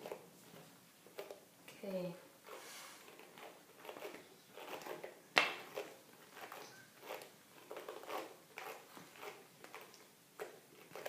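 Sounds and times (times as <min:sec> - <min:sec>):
brush rustling through curly hair: 0:02.5 - 0:05.0.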